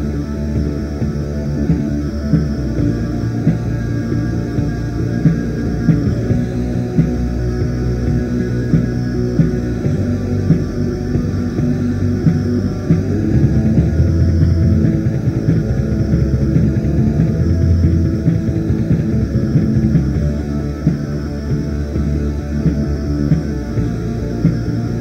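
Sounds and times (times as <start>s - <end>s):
lo-fi black metal music: 0.0s - 25.0s.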